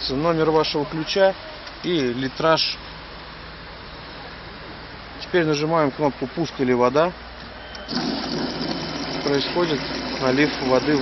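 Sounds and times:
water pouring into plastic bottle: 7.9s - 11.0s.

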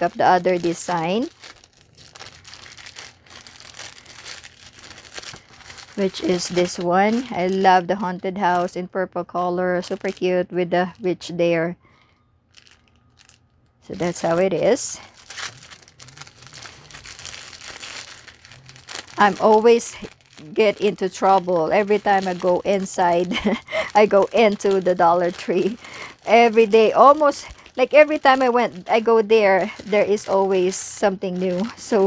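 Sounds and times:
plastic bags crinkling: 0.0s - 8.8s, 9.6s - 11.1s, 12.0s - 32.0s.

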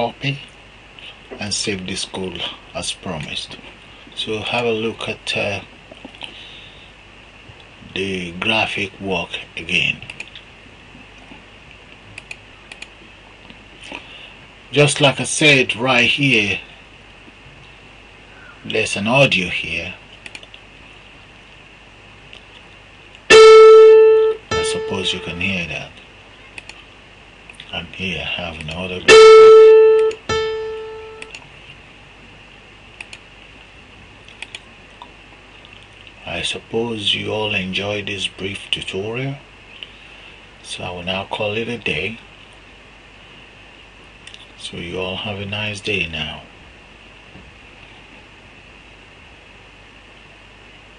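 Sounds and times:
faint low hum: 0.0s - 50.9s
computer mouse clicking: 12.2s - 12.9s, 20.2s - 20.6s, 26.6s - 26.8s, 31.2s - 31.4s, 33.0s - 33.2s, 34.3s - 34.7s.

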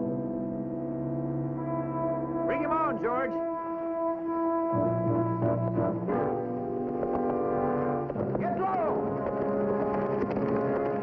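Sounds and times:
orchestral brass chords: 0.0s - 10.0s.

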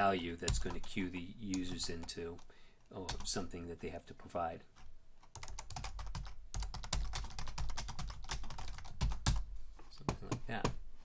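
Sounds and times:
typing on a keyboard: 5.3s - 9.4s.

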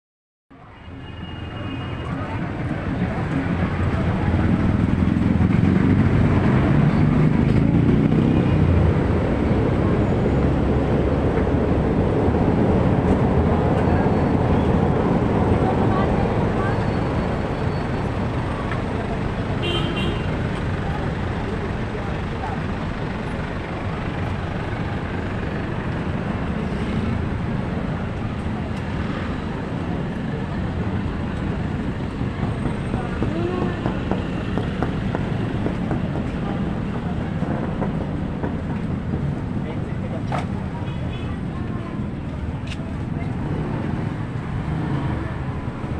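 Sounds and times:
car and motorcycle engines passing: 2.2s - 45.9s
people talking: 13.5s - 19.6s, 20.4s - 24.1s, 32.2s - 44.0s.

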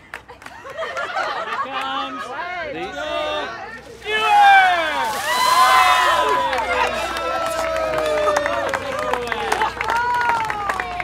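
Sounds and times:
water splashing: 3.9s - 7.2s
people shrieking and yelling: 4.0s - 9.1s.

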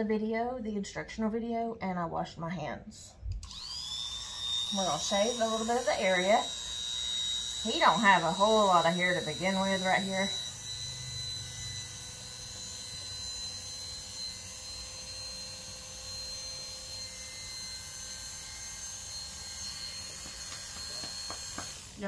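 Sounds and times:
electric clippers humming: 3.4s - 22.0s.

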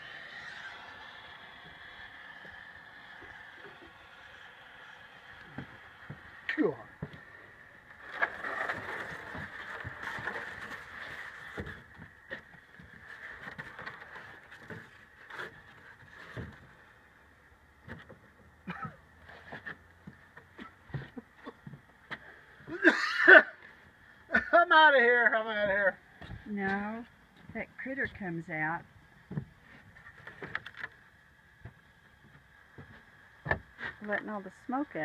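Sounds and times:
smoke bomb hissing: 0.0s - 11.7s.

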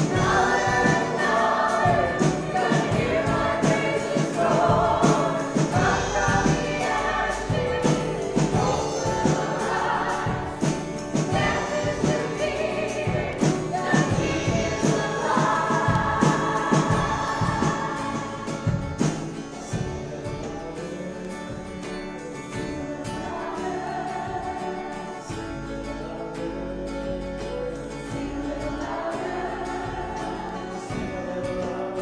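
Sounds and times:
people singing: 0.0s - 32.0s
strummed acoustic guitars: 0.0s - 32.0s.

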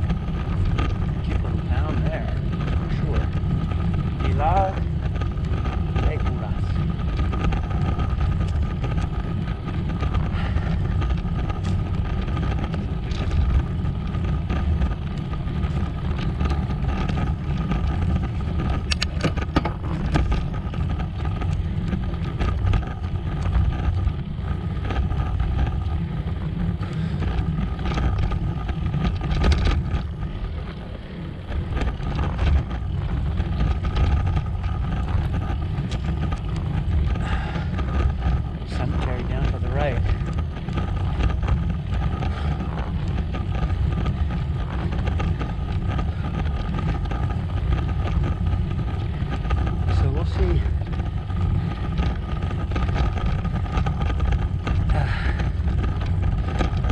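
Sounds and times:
tyres rumbling on rough asphalt: 0.0s - 56.9s
wind buffeting microphone: 0.0s - 56.9s.

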